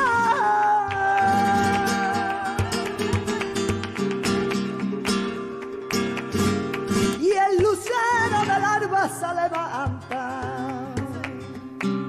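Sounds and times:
woman singing ornamented line: 0:00.0 - 0:03.2, 0:07.2 - 0:11.4.

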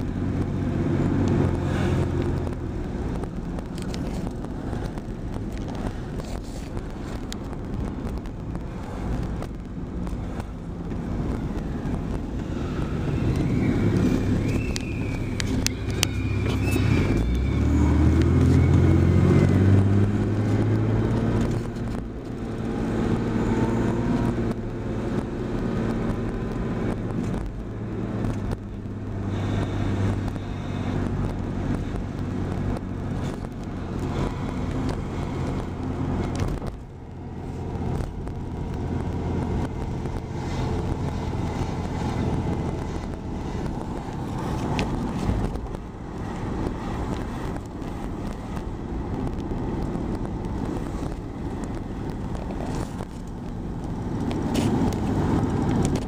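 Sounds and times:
car engine accelerating: 0:00.0 - 0:56.0
tyre noise: 0:00.0 - 0:56.0.

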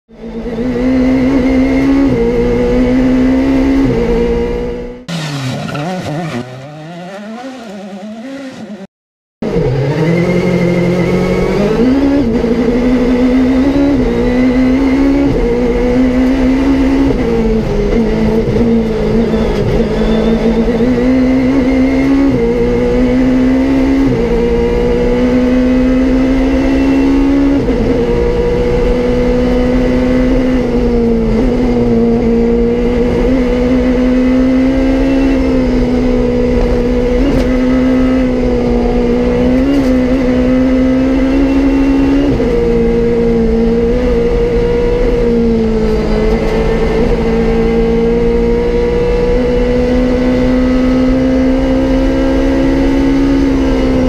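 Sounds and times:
car engine at high revs: 0:00.1 - 0:54.0.

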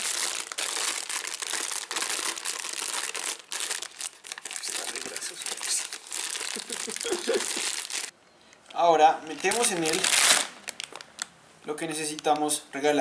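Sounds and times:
foil snack bag crinkling: 0:00.0 - 0:08.1, 0:09.3 - 0:11.3.

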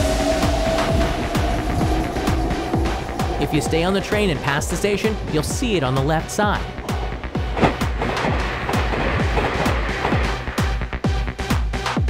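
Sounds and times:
electronic music with kick drum: 0:00.0 - 0:12.0.

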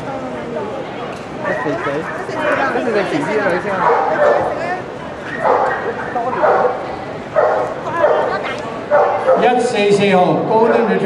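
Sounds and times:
dogs barking: 0:03.7 - 0:09.7.

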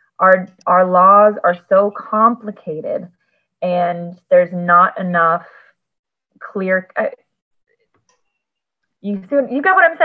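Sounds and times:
woman's voice: 0:00.2 - 0:05.7, 0:06.4 - 0:07.2, 0:09.0 - 0:10.0.

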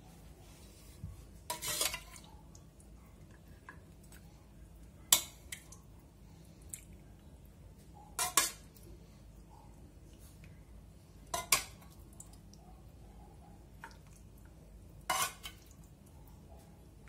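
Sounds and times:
metal spoon scraping pot: 0:01.5 - 0:02.2, 0:08.2 - 0:08.7, 0:15.1 - 0:15.6
spoon clinking on pot: 0:08.1 - 0:08.6.

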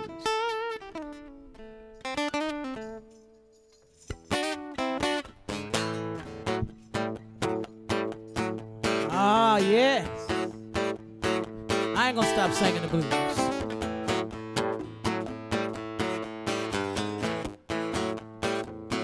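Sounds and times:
acoustic guitar blues: 0:00.0 - 0:19.0.

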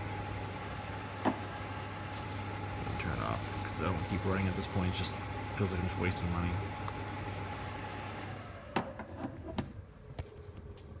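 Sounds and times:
fireplace fan hum winding down: 0:00.0 - 0:11.0.

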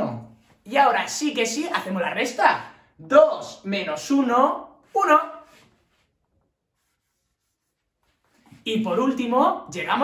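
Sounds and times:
marker pen writing on whiteboard: 0:06.7 - 0:08.8.

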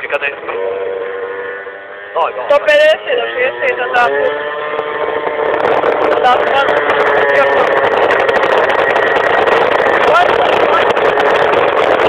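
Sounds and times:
scooter engine running steadily: 0:00.0 - 0:12.0.

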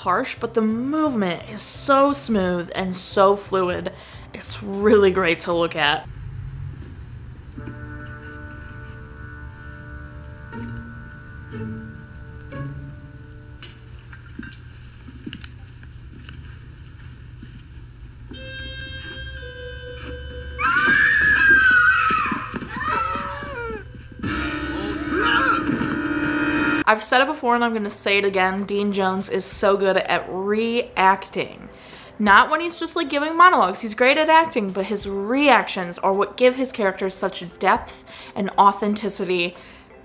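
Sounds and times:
low hum: 0:06.0 - 0:26.9
cry sliding in pitch: 0:20.6 - 0:26.1.

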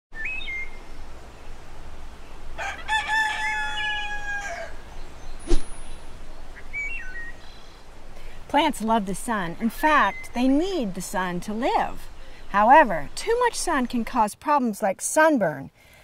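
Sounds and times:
steady background hiss: 0:00.2 - 0:16.0
rooster crowing: 0:02.6 - 0:04.9
single sharp sound: 0:05.4 - 0:06.0.

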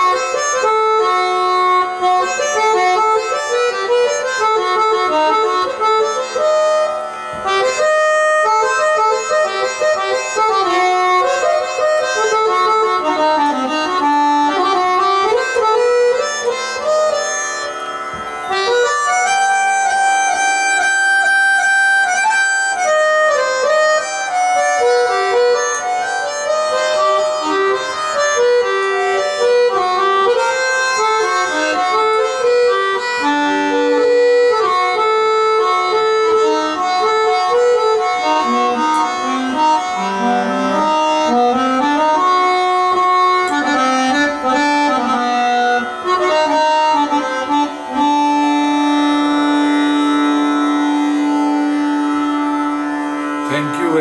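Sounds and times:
harmonium playing slow melody: 0:00.0 - 0:54.0.

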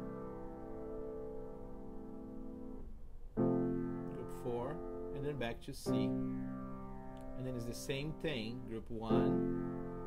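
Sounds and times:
piano chord ringing: 0:00.0 - 0:10.0.

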